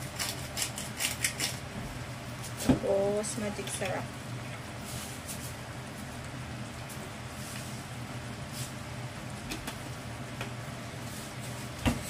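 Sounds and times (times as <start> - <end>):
meat frying in a pan: 0.0 - 11.9
kitchen exhaust fan humming: 0.0 - 12.0.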